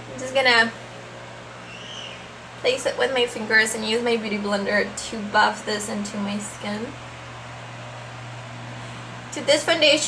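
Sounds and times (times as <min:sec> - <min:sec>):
constant low hum: 0:00.0 - 0:10.0
steady background hiss: 0:00.0 - 0:10.0.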